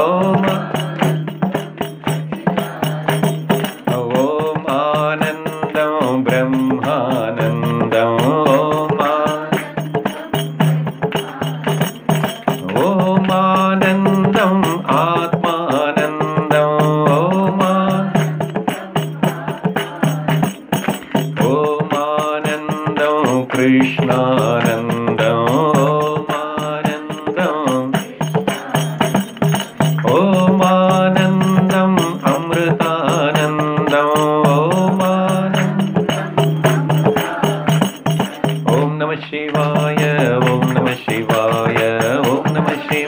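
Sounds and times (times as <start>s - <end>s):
hand-struck percussion: 0.0s - 43.0s
man singing a chant: 0.0s - 43.0s.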